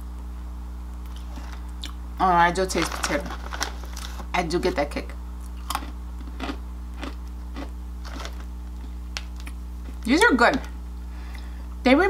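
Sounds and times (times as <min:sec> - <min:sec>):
steady low hum: 0:00.0 - 0:12.0
chewing crunchy chips: 0:05.4 - 0:10.1.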